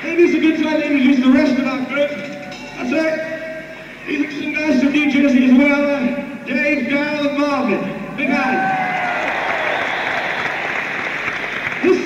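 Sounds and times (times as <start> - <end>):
audience applauding: 8.4 - 12.0.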